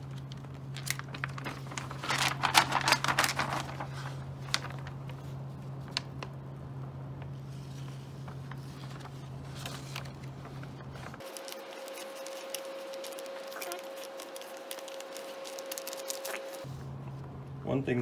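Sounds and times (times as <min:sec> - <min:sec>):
plastic bag crinkling: 0:00.0 - 0:06.4, 0:07.9 - 0:16.7
steady low hum: 0:00.0 - 0:18.0.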